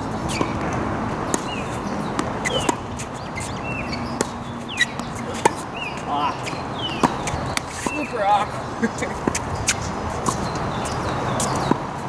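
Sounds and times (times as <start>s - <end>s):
birds chirping: 0.0s - 11.9s
tennis ball knocks: 1.3s - 2.8s.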